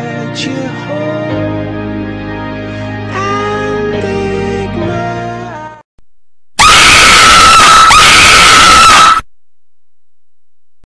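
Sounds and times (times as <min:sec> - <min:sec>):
woman screaming: 0:06.6 - 0:09.2.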